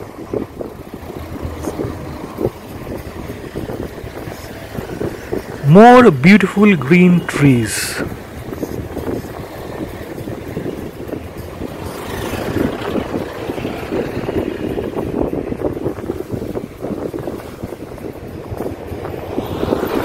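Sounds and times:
wind buffeting microphone: 0.0s - 5.7s, 8.0s - 20.0s
engine and tyre rumble: 0.0s - 20.0s.

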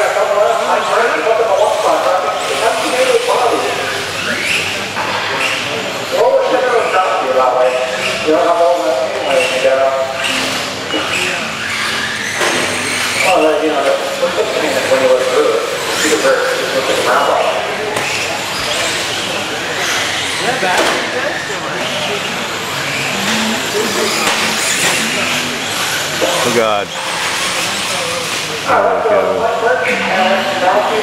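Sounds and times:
chatter of voices: 0.0s - 31.0s
toy car motors whining: 2.4s - 6.0s, 6.7s - 31.0s.

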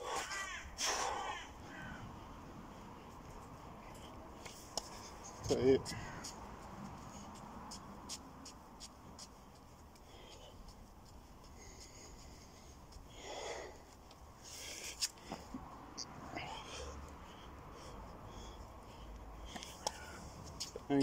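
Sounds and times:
man breathing hard: 0.0s - 2.3s, 10.0s - 10.8s, 11.4s - 20.6s.

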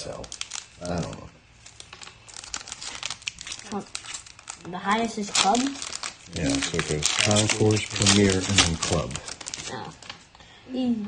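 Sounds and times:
foil wrapper crinkling: 0.0s - 10.4s.

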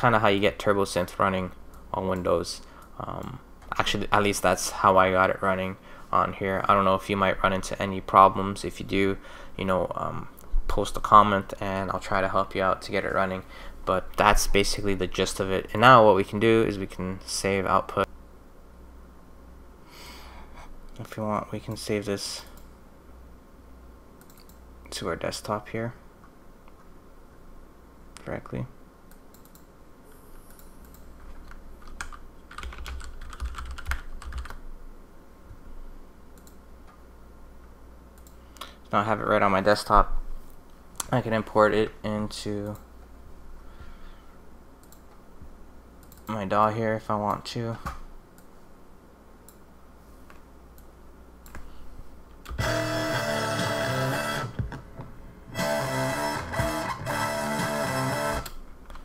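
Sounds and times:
typing on computer keyboard: 30.6s - 34.6s
synthesized guitar-like phrase: 52.6s - 54.8s, 55.4s - 58.4s.

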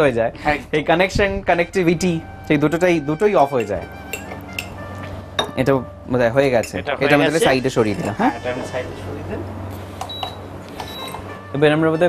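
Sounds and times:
utensil clinking against bowls: 3.4s - 5.7s, 6.5s - 8.8s.

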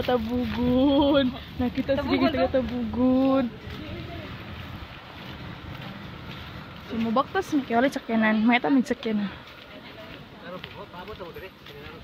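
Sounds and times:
wind rumbling on microphone: 0.0s - 8.6s.

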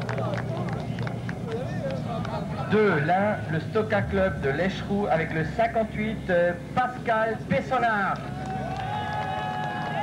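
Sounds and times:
voices cheering: 8.2s - 10.0s.

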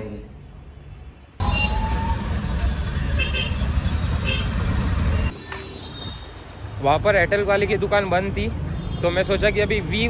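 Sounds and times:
street traffic: 0.0s - 10.0s
auto-rickshaw engine rumbling: 1.4s - 8.5s.

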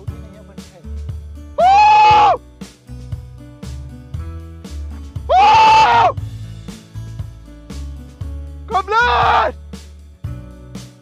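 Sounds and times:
background music with steady beat: 0.0s - 11.0s
man shouting on a high note: 1.6s - 2.4s, 5.3s - 6.2s, 8.7s - 9.6s.

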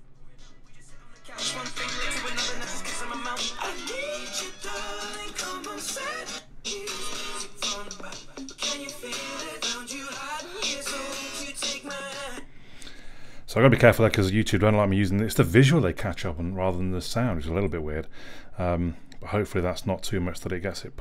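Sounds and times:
song from phone speaker: 0.2s - 12.5s.

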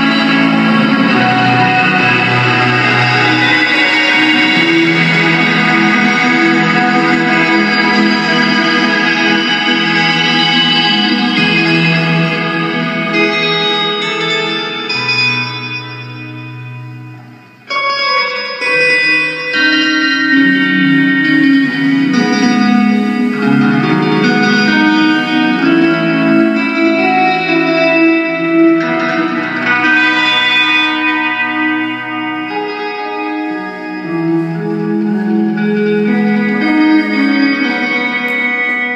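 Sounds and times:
electric guitar and keyboard chords: 0.0s - 38.9s.

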